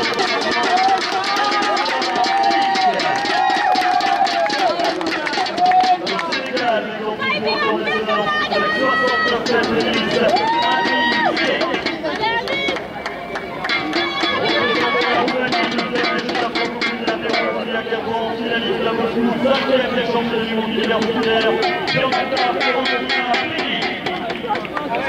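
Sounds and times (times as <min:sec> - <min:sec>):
crowd clapping: 0:00.0 - 0:06.8, 0:09.4 - 0:17.4, 0:23.4 - 0:25.0
music over public address: 0:00.0 - 0:25.0
voice over public address: 0:04.3 - 0:25.0.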